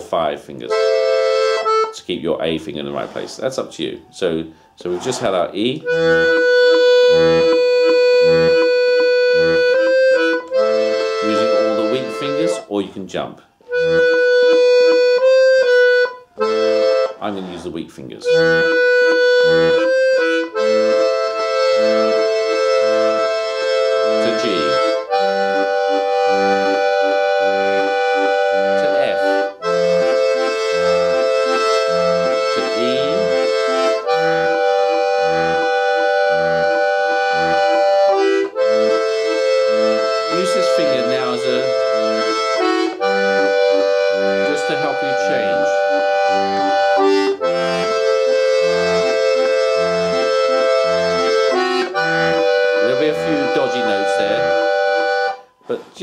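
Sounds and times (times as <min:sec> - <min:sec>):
accordion playing a waltz: 0:00.0 - 0:12.9, 0:13.6 - 0:56.0.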